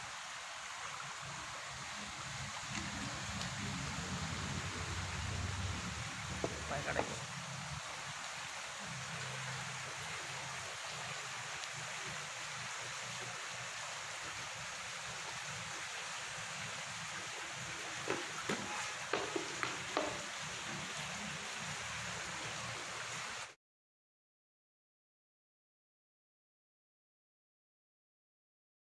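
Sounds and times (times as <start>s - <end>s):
steady outdoor hiss: 0.0s - 23.6s.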